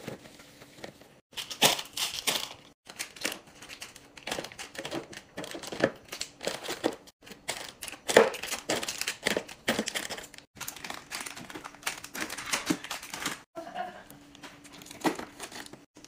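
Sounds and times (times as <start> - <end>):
plastic wrappers crinkling: 1.3 - 13.5, 14.3 - 15.9.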